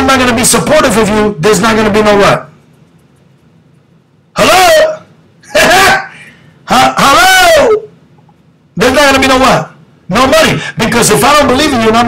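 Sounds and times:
man shouting distorted: 4.4s - 6.1s, 6.7s - 7.9s.

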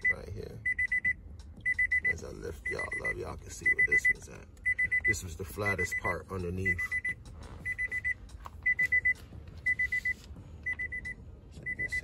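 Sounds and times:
car warning chime beeping: 0.0s - 12.0s.

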